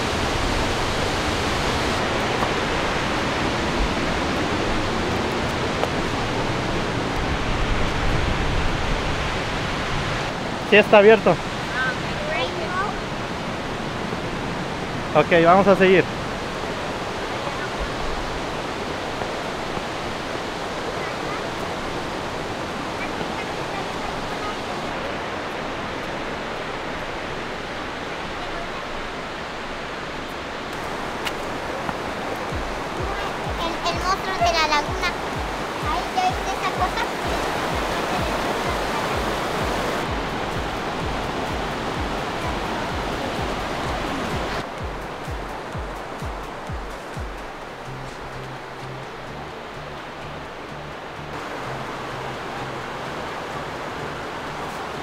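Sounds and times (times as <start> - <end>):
creek flowing over rocks: 0.0 - 55.0
background music with low beat: 31.0 - 55.0.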